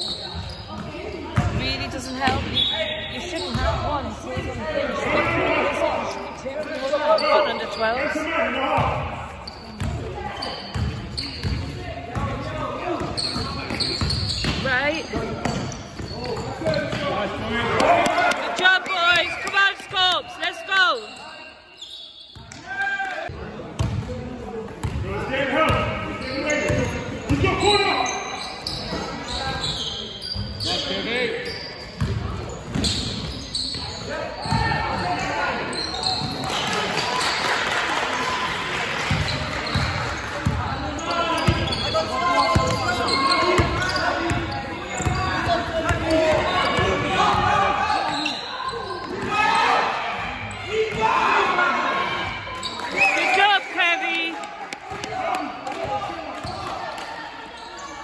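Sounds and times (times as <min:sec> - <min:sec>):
indistinct shouts and voices: 0:40.6 - 0:58.0.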